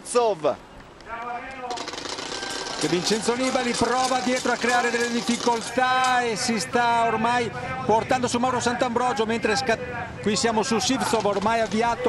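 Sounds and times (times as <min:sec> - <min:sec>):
voices: 0:00.3 - 0:12.0
motorcycle engine rattling: 0:01.7 - 0:06.6, 0:10.7 - 0:12.0.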